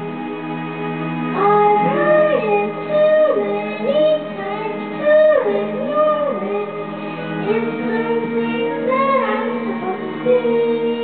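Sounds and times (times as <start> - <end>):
backing track music: 0.0 - 11.0
girl singing karaoke: 1.3 - 11.0.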